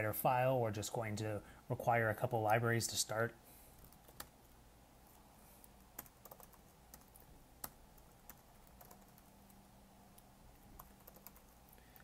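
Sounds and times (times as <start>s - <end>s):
computer keyboard keystrokes: 3.8s - 4.3s, 6.0s - 9.6s, 10.7s - 12.0s.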